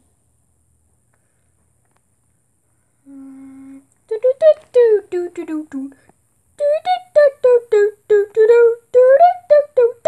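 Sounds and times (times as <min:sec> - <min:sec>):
person humming: 0:03.0 - 0:06.0, 0:06.6 - 0:10.0.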